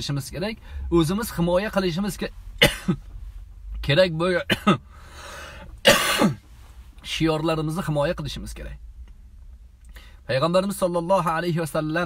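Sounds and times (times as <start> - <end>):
man clearing throat: 2.6 - 3.0, 4.4 - 4.9, 5.8 - 6.4.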